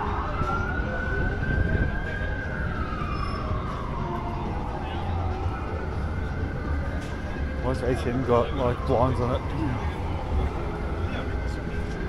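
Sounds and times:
emergency vehicle siren wailing: 0.0 - 12.0
low traffic rumble: 0.0 - 12.0.

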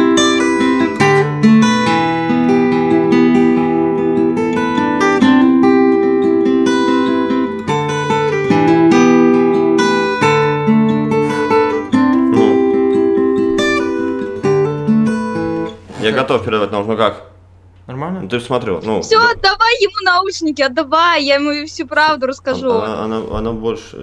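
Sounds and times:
fingerstyle acoustic guitar: 0.0 - 16.2.

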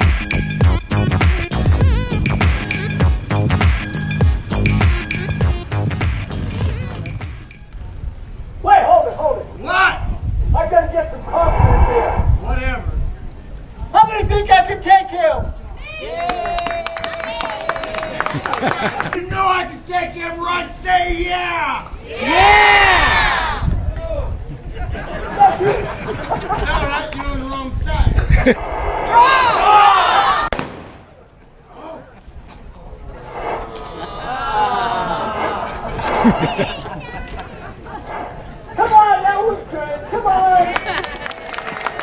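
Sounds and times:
steady low rumble: 10.2 - 13.9, 28.2 - 31.4, 32.8 - 38.8
voices shouting: 21.6 - 23.7, 29.1 - 30.6, 33.2 - 40.9
gunshot: 30.5 - 31.2.

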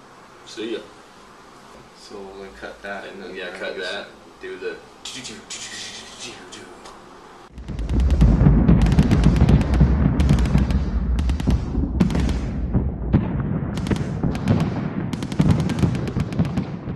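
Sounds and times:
deep booming rumble: 7.5 - 16.9
automatic gunfire bursts: 7.8 - 12.5, 13.8 - 16.7.

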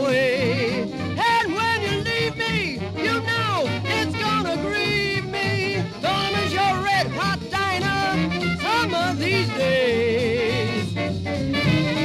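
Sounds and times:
jazz band playing: 0.0 - 12.0.

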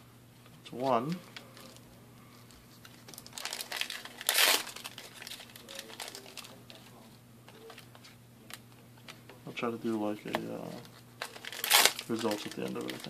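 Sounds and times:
foil wrapper crinkling: 2.7 - 8.6, 10.7 - 13.0
foil wrapper tearing: 3.0 - 6.6, 11.2 - 13.0.

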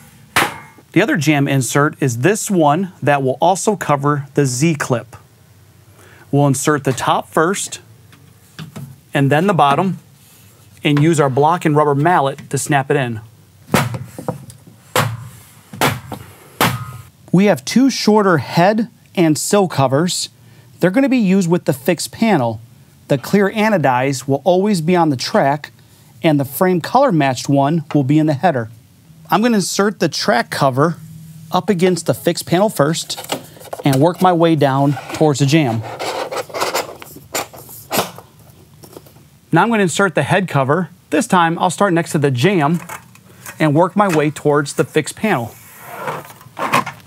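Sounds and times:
rubber mallet striking wood block: 15.0 - 17.0.

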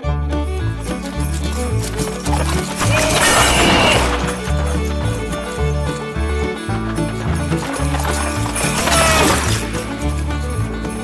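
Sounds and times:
hoofbeats: 0.0 - 11.0
horse whinny: 2.6 - 4.5, 8.1 - 9.9.

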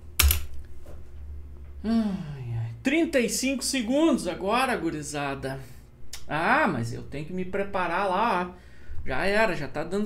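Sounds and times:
man sighing: 1.8 - 2.4.

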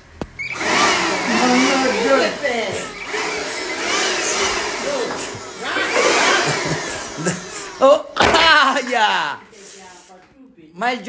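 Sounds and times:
electric blower running: 0.2 - 9.4.

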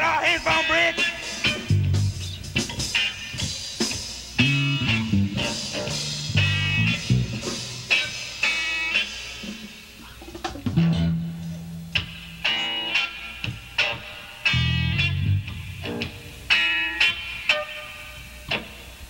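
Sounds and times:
noise rock band playing: 0.0 - 19.0.

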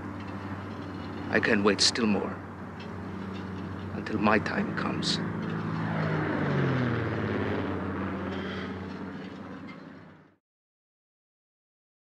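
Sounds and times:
passing motor droning: 0.0 - 10.4.

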